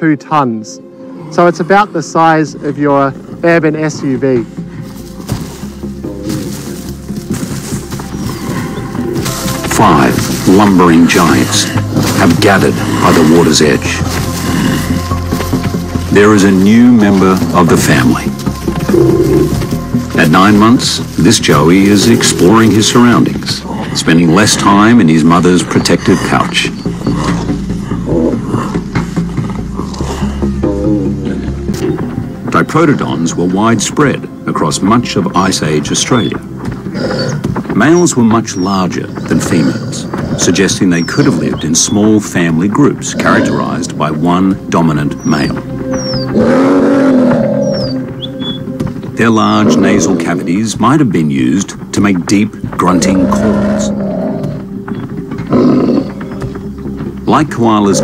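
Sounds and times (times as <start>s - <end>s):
low background music: 0.0s - 58.0s
deep animal grunt: 36.9s - 37.5s.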